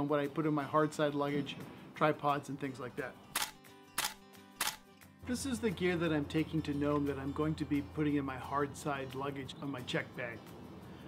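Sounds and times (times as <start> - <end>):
soft background music: 0.0 - 11.0
camera shutter clicks: 3.3 - 4.9.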